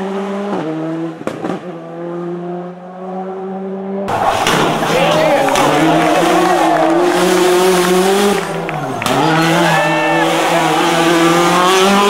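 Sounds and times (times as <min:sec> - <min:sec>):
rally car engine revving: 0:00.0 - 0:12.0.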